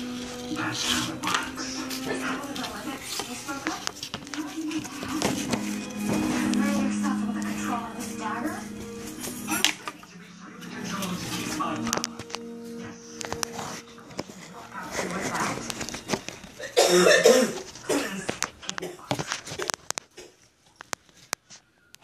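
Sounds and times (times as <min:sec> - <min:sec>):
held music tones: 0:00.0 - 0:18.0
dialogue: 0:00.1 - 0:19.0.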